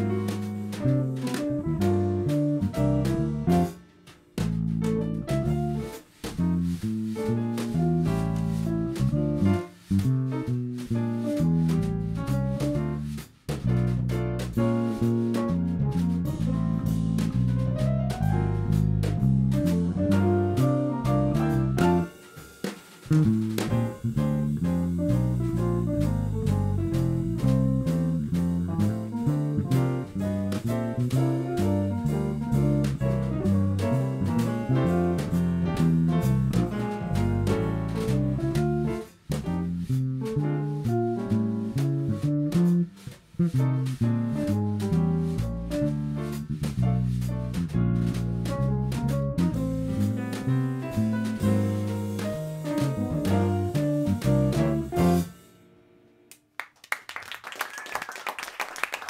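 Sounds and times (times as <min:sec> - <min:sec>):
jazz quartet playing: 0:00.0 - 0:03.8, 0:04.4 - 0:55.5
steady jazz cymbal beat: 0:00.0 - 0:55.8.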